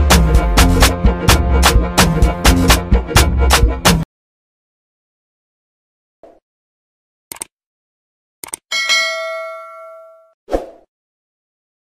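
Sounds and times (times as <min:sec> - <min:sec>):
double mouse click: 0:08.4 - 0:08.6
notification bell ding: 0:08.7 - 0:10.4.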